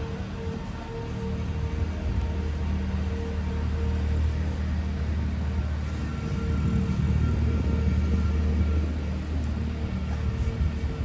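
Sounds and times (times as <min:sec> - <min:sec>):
engine rumbling: 0:00.0 - 0:11.0.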